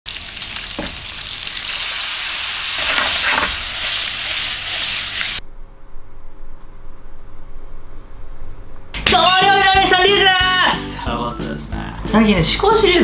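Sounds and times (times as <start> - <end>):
meat sizzling in a frying pan: 0.1 - 5.4.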